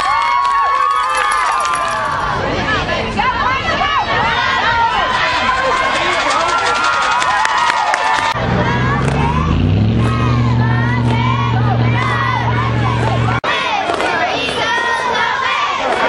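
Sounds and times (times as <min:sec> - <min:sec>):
spectators shouting and cheering: 0:00.0 - 0:16.0
low motor drone: 0:08.3 - 0:13.4.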